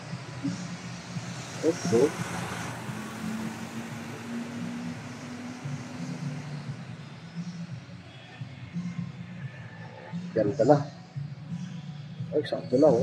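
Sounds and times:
low engine drone: 0.0s - 9.4s
van driving past: 0.0s - 10.5s.

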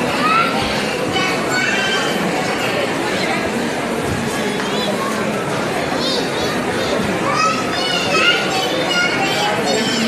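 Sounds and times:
shoppers chattering: 0.0s - 10.0s.

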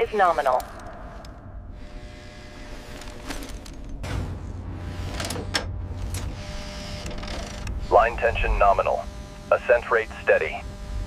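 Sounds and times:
low rumble: 0.0s - 2.9s.

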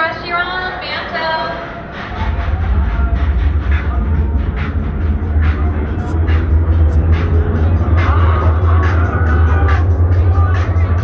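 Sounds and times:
roller coaster rumble: 0.0s - 11.0s.

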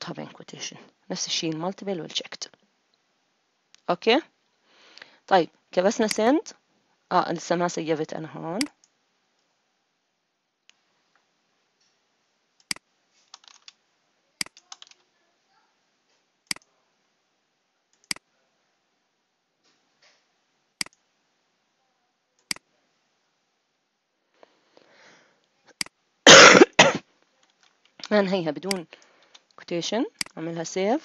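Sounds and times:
mouse clicks: 6.0s - 6.2s, 14.4s - 15.0s, 20.8s - 21.0s
sharp click: 20.8s - 21.0s
person coughing: 26.3s - 27.0s.

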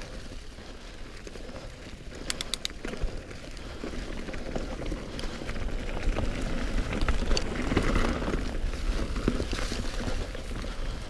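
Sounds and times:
bike rattling: 0.0s - 11.0s
bike tyres crunching through leaves: 0.0s - 11.0s.

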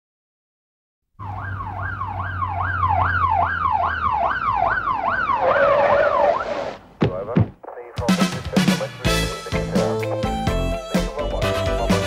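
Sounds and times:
police car siren yelping: 1.2s - 6.8s.

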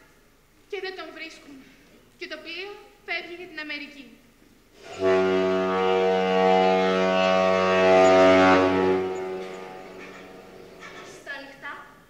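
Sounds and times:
ship's horn blast: 4.8s - 11.1s.

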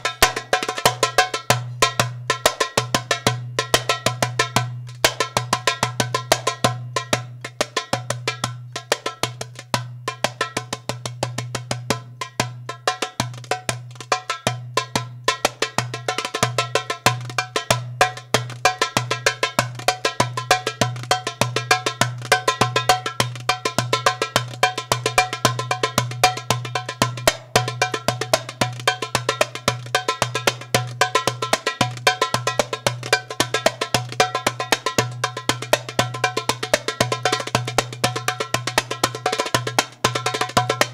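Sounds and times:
hand drumming: 0.0s - 40.9s.

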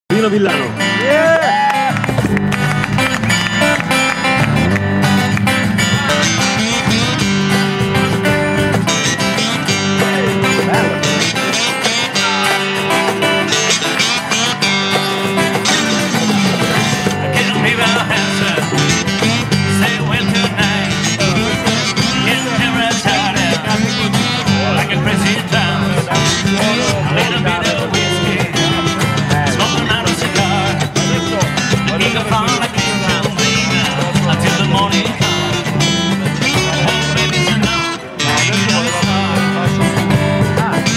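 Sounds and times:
cajon beat: 0.1s - 40.9s
electric bass: 0.1s - 40.9s
strummed acoustic guitars: 0.1s - 40.9s.

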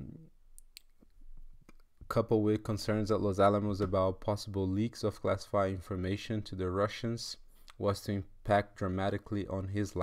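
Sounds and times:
person saying um: 0.0s - 0.3s.

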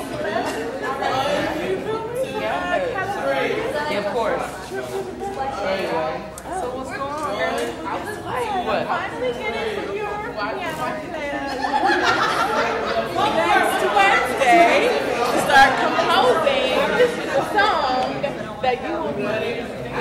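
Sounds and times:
overlapping chatter of voices: 0.0s - 20.0s.

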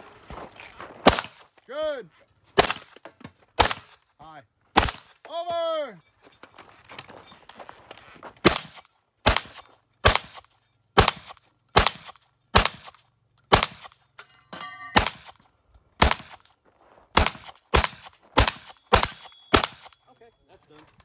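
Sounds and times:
shotgun shots: 1.0s - 1.4s, 2.6s - 3.0s, 3.6s - 4.0s, 4.8s - 5.2s, 8.4s - 14.0s, 14.9s - 15.4s, 16.0s - 16.5s, 17.2s - 20.0s
steel target ringing: 14.2s - 15.3s, 18.5s - 20.1s.

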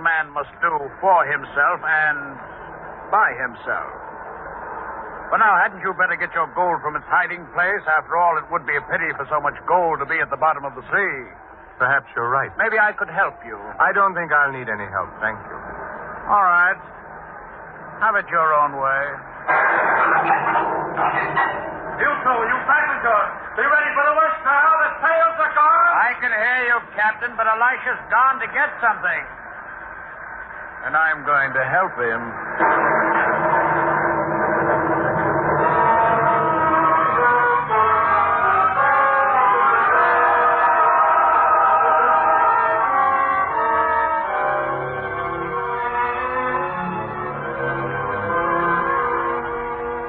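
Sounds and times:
orchestral music with brass: 35.3s - 50.0s.

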